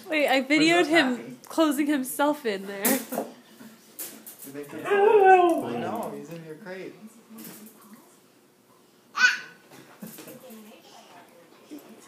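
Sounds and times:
dog whimpering: 4.8 - 6.0
dog whining: 4.8 - 6.1.

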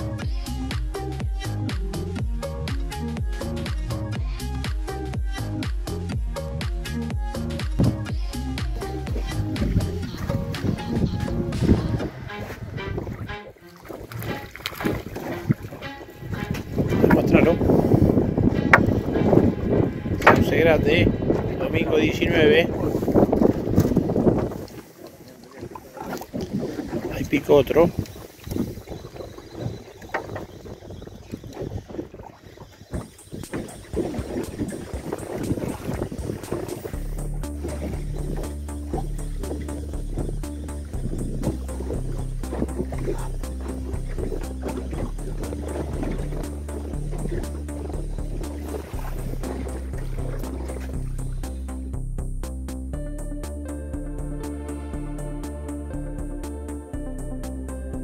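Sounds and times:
background music: 0.0 - 24.3, 33.2 - 58.0
water lapping around boat: 0.0 - 53.0
wind on microphone: 7.7 - 51.6.

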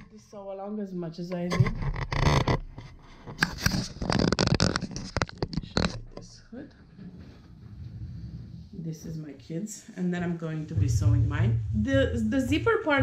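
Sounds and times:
short crackles: 1.6 - 6.1
fabric rustling and scraping: 1.8 - 6.0, 7.0 - 9.4.

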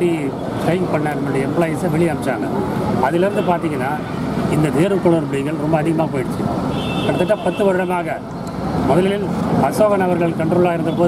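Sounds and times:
man speaking: 0.0 - 8.2, 8.9 - 11.0.

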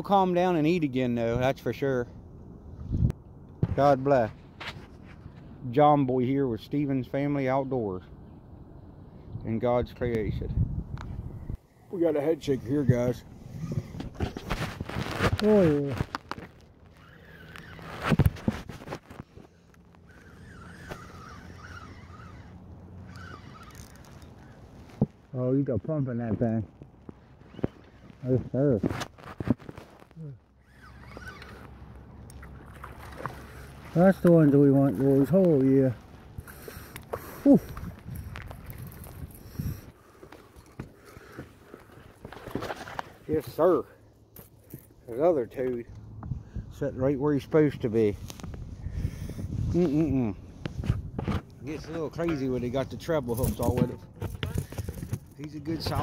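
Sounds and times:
fishing reel whirring: 16.9 - 18.0, 20.0 - 24.6, 30.6 - 31.7.

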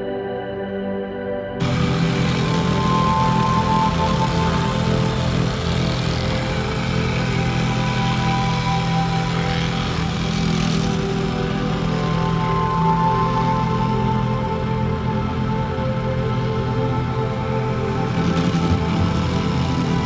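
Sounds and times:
background music: 0.0 - 20.0
plate compactor engine running: 1.6 - 20.0.

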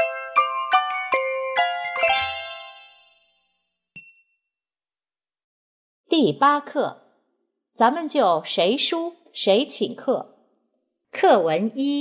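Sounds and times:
chime-like mallet percussion jingle: 0.0 - 5.5
sharp high ding: 4.0 - 5.4.

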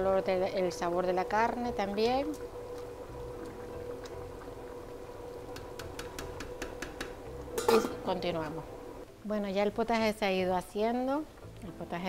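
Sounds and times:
steady hum: 0.0 - 9.1
stew simmering: 0.0 - 12.0
ladle stirring pot: 5.5 - 8.1.

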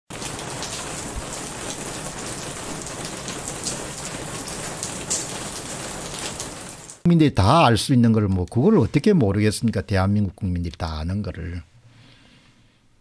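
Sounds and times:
raindrops ticking: 0.1 - 7.1
steady rain hiss: 0.1 - 7.9.

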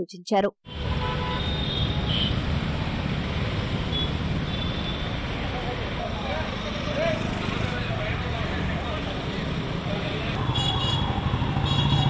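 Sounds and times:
motorcycle and car engines: 0.7 - 12.0.

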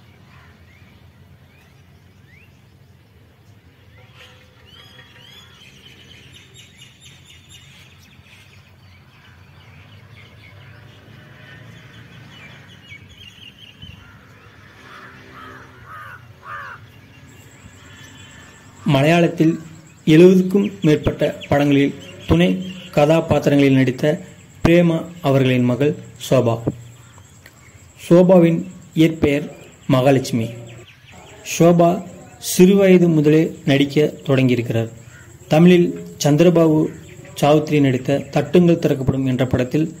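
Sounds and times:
birds chirping and calling: 0.0 - 40.0
steady low background hum: 0.0 - 40.0.

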